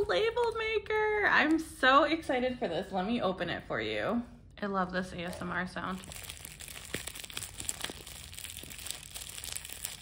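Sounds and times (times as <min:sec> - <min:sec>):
plastic shrink wrap crinkling: 0:05.3 - 0:10.0.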